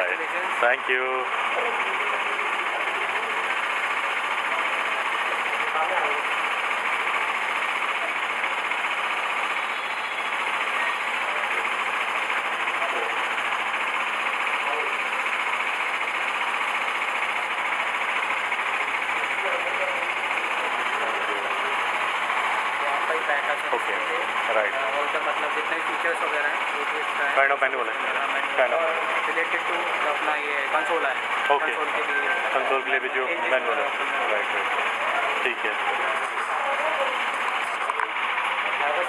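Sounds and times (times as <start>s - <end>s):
crowd of people talking: 0.0s - 39.0s.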